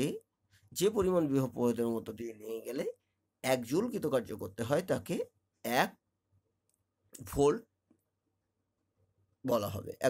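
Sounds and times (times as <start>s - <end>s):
person speaking: 0.0s - 6.0s, 7.1s - 7.8s, 9.4s - 10.0s.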